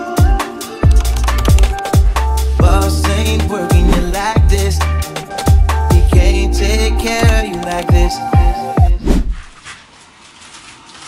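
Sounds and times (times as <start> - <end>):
electronic music: 0.3 - 9.0
low bass hit: 3.8 - 4.8.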